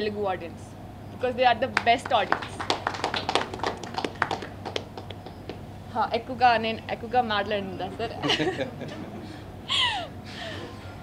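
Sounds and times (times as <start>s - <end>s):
hand clapping: 1.8s - 5.6s.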